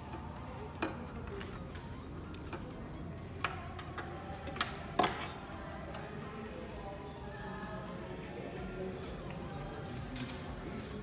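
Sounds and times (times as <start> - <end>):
steady hall hum: 0.0 - 11.0.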